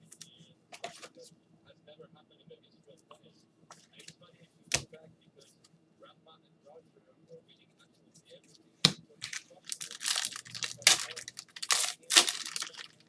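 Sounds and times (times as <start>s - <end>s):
card pack wrapper tearing and crinkling: 9.2s - 13.0s
sharp wrapper crack: 9.2s - 13.0s.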